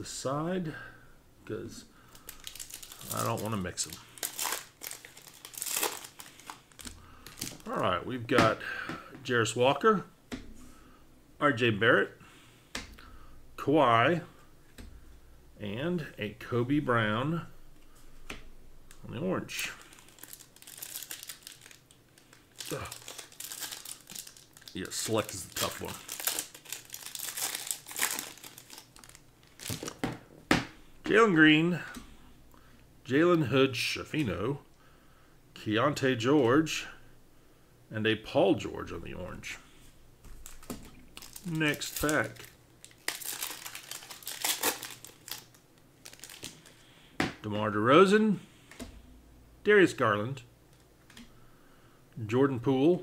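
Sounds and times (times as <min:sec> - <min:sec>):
plastic foil wrapper crinkling: 0:02.1 - 0:07.9, 0:19.6 - 0:30.0, 0:40.4 - 0:46.9.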